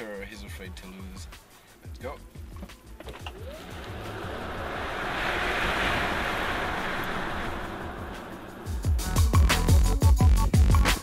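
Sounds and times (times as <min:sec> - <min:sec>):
road and wind noise in car cabin: 0:01.9 - 0:09.7
music with steady beat: 0:08.8 - 0:11.0.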